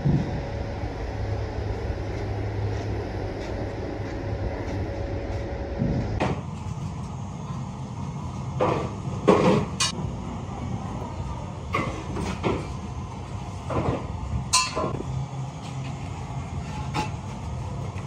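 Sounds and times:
factory machinery rumble: 0:00.0 - 0:18.0.

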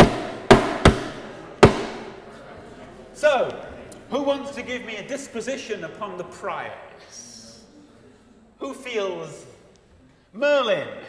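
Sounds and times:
sharp knocks with ringing decay: 0:00.0 - 0:02.1.

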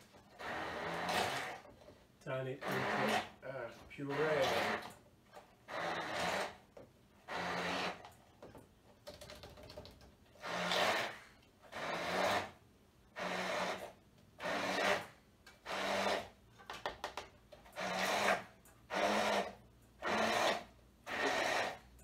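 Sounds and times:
rhythmic rasping grinding strokes: 0:02.5 - 0:04.9.

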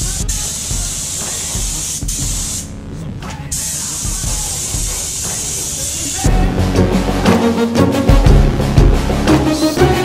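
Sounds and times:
spray gun hissing: 0:00.0 - 0:02.7, 0:03.5 - 0:06.4.

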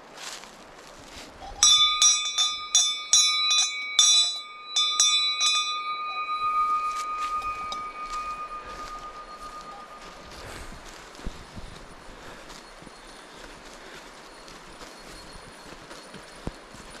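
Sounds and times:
brass bell clanging: 0:01.6 - 0:11.2.

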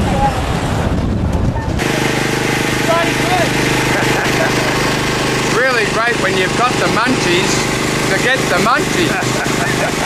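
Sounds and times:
small engine idling: 0:01.8 - 0:10.0.

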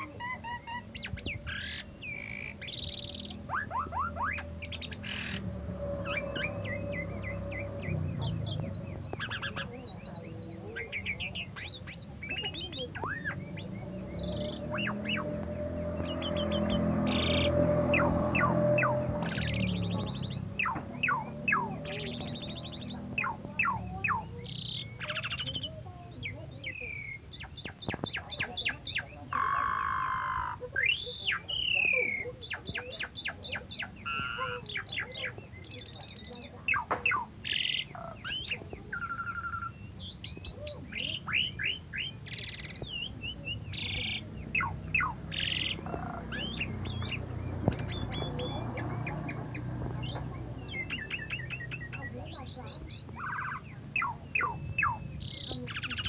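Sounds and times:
starling singing chirps and trills: 0:00.0 - 0:56.0.

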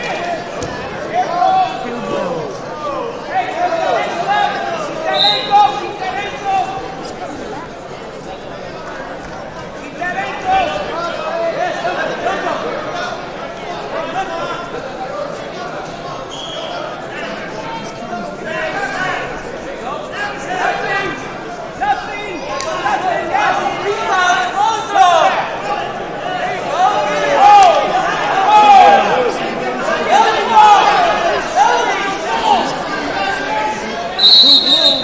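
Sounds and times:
voices shouting in echoing hall: 0:00.0 - 0:35.0.

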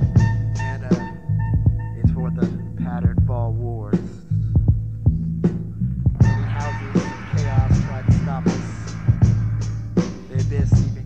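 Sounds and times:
deep bass line: 0:00.0 - 0:11.0
drum hits: 0:00.0 - 0:11.0.

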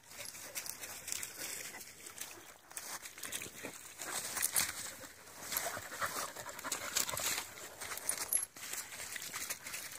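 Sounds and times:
dogs scuffling in leaves: 0:00.1 - 0:09.9
dog noises: 0:04.0 - 0:08.1.

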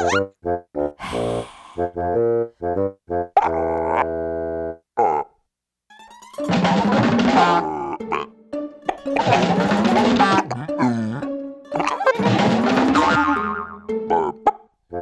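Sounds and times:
comic cartoon music: 0:00.0 - 0:04.8, 0:05.9 - 0:15.0.

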